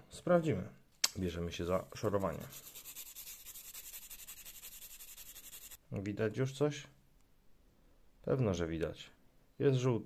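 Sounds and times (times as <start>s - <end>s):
nail file scratching metal: 2.1s - 5.8s.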